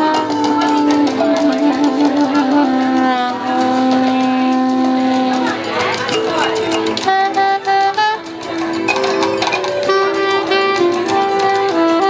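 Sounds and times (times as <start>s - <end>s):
soprano saxophone playing: 0.0s - 12.0s.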